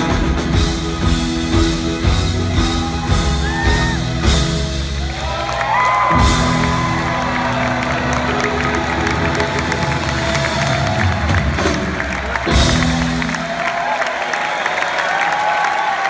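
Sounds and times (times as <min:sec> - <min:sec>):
live rock band: 0:00.0 - 0:14.1
audience cheering and clapping: 0:00.0 - 0:16.0.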